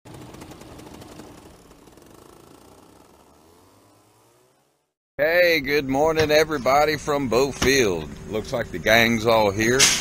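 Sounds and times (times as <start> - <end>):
paramotor engine rattling: 0.1 - 3.3.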